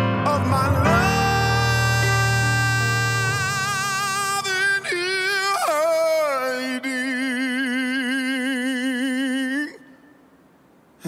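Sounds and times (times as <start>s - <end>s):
man singing soul ballad: 0.0s - 9.9s.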